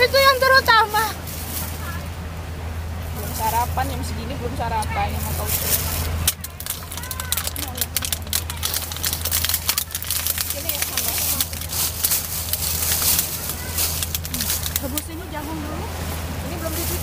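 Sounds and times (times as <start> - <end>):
steady low hum: 0.0 - 17.0
plastic bags crinkling: 5.5 - 15.7.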